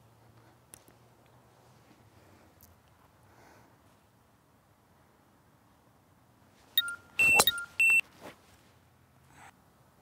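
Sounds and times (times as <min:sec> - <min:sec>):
high electronic beeps: 0:06.8 - 0:08.0.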